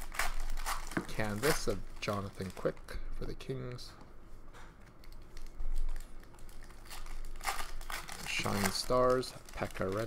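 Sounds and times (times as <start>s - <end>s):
trading cards clicking and rustling: 0.0s - 2.8s, 4.8s - 10.0s.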